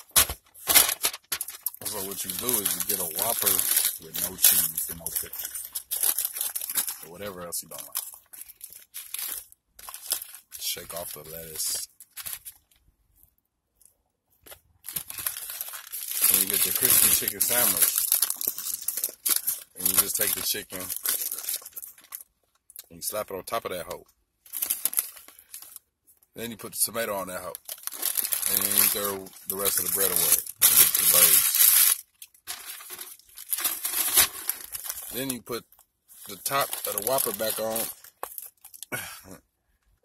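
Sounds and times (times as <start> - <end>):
burger wrapper crinkling: 0.0 - 12.9, 13.7 - 39.1.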